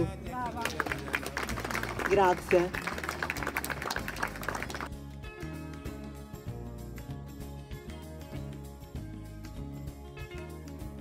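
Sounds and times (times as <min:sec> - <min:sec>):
audience applauding: 0:00.4 - 0:04.9.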